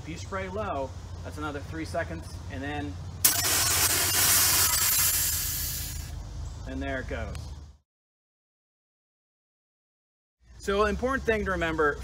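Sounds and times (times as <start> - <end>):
spray canister hissing: 3.2 - 6.1.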